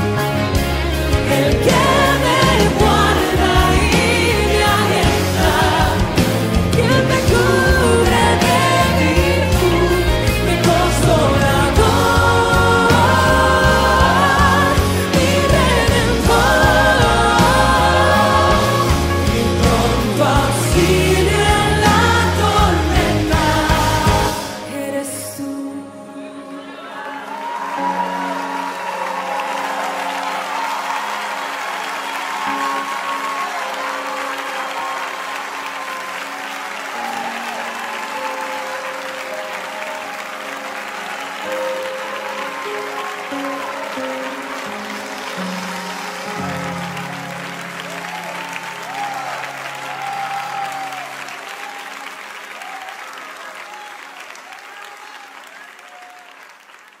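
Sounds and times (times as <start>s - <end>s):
crowd applause: 0.0s - 24.8s, 26.5s - 57.0s
sustained worship song chords: 0.0s - 28.8s.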